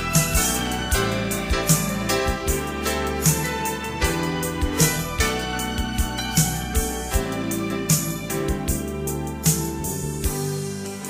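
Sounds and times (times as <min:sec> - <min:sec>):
sharp percussive hit: 0:00.0 - 0:10.5
sustained instrumental chords: 0:00.0 - 0:11.0.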